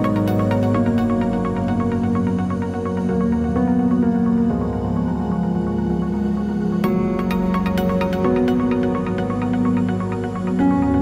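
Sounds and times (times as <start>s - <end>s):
electronic music: 0.0s - 11.0s.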